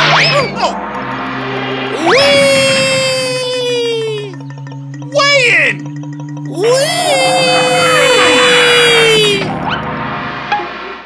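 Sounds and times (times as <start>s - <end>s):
whistle-like tone sliding down: 0.0s - 4.4s
cartoon music: 1.9s - 9.9s.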